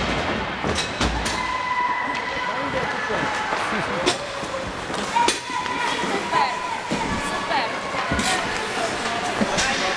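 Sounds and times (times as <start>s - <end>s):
voices in echoing hall: 1.3s - 9.9s.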